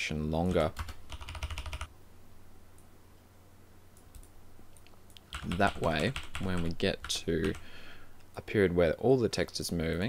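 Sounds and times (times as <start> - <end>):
computer keyboard typing: 0.4 - 1.9, 4.0 - 7.6.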